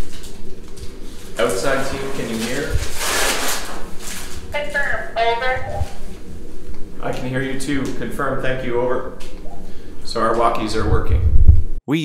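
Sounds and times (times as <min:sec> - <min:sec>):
radio static hiss: 0:00.8 - 0:11.2.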